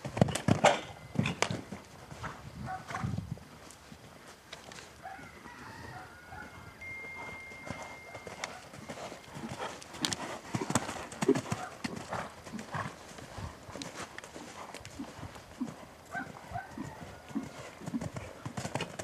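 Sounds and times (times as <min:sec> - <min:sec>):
horse hoofbeats cantering: 0:05.8 - 0:19.0.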